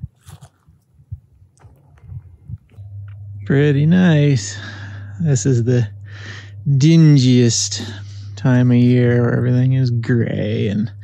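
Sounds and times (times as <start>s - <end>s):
soft low thumps: 0.0s - 11.0s.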